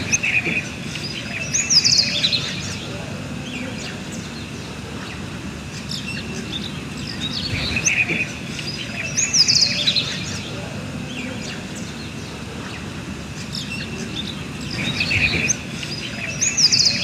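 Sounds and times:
birds chirping and calling: 0.0s - 17.0s
low background noise: 0.0s - 17.0s.

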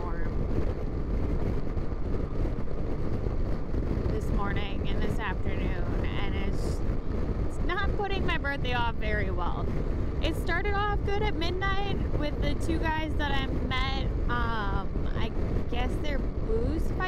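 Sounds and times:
motorcycle road noise: 0.0s - 17.0s
wind rush: 0.0s - 17.0s.

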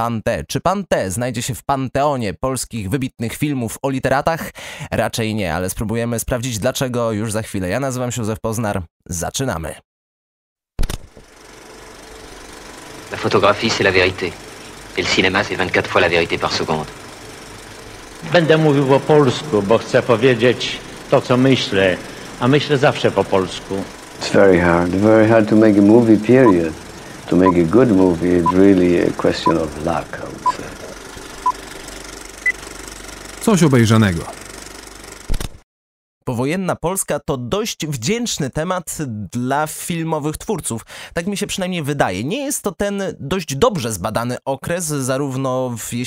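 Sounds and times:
machine rattling: 11.1s - 35.4s.

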